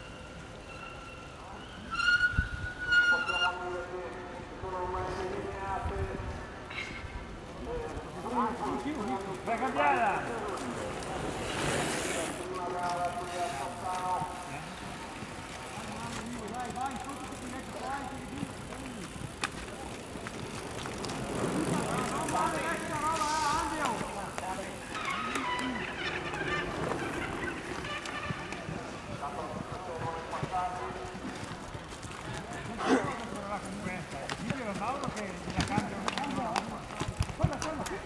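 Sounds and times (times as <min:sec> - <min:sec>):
people calling out: 0:21.4 - 0:29.2.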